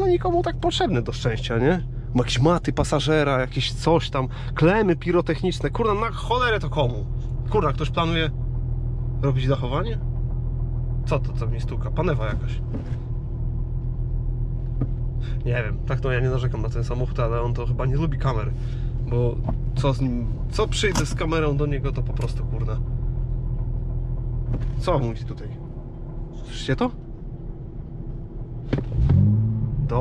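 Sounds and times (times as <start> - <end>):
car engine droning: 0.0 - 30.0.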